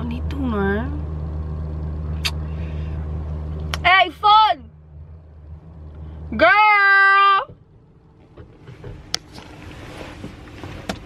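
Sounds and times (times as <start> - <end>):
low hum inside a car: 0.0 - 11.0.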